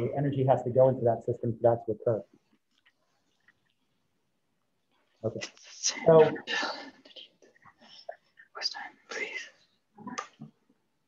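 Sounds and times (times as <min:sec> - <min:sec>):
person whispering: 0:05.4 - 0:10.3.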